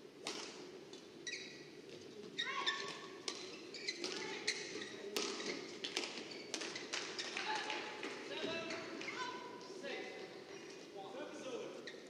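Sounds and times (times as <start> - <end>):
rackets hitting shuttlecock: 0.2 - 0.7, 5.1 - 7.2
shoes squeaking on court floor: 0.3 - 11.0, 11.7 - 12.0.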